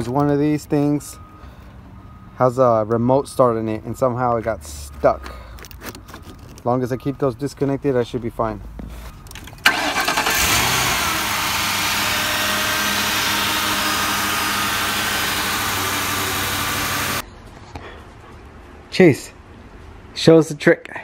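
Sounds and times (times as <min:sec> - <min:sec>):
car engine starting and running: 0:09.3 - 0:17.2.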